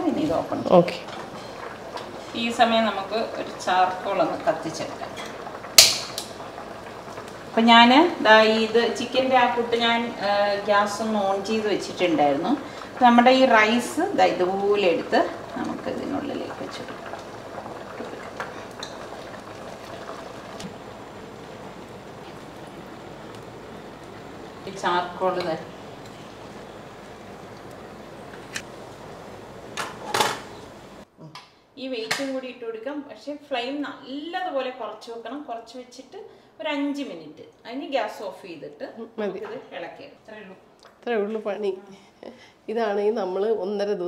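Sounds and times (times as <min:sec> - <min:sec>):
water boiling in pot: 0:00.0 - 0:31.1
spark lighter clicking: 0:05.8 - 0:06.3.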